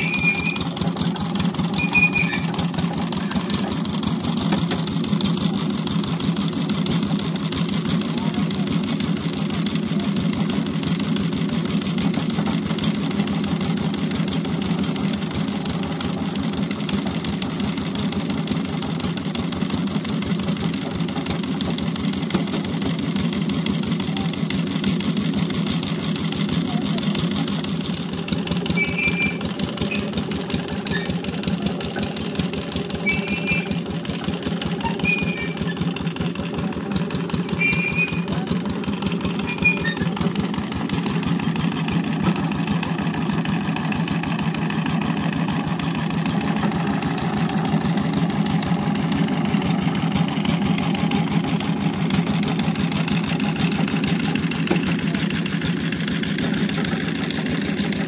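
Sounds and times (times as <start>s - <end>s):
small engine thudding: 0.0s - 58.0s.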